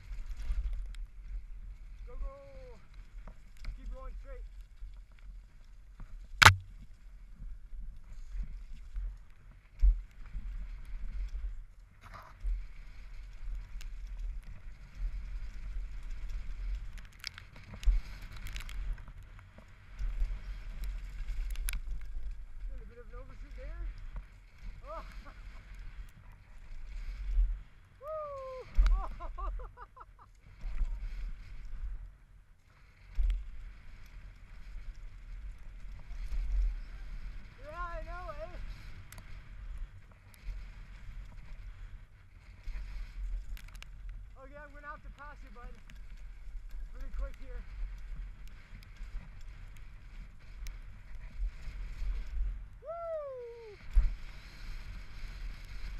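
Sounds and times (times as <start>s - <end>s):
bike rattles and clicks: 0.0s - 28.0s, 28.7s - 52.8s, 53.8s - 55.9s
wind rumble on microphone: 0.0s - 55.9s
sharp loud knock: 6.4s - 6.7s.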